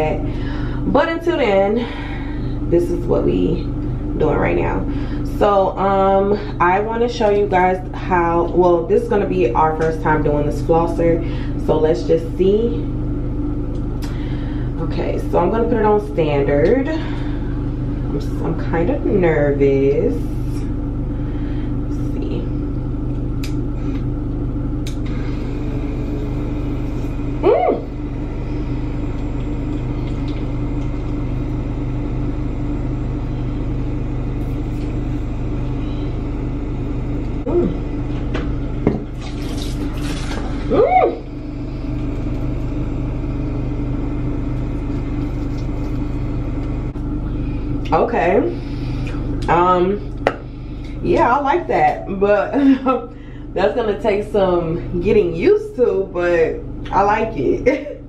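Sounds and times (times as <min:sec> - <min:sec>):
water flosser pump humming: 0:00.0 - 0:58.0.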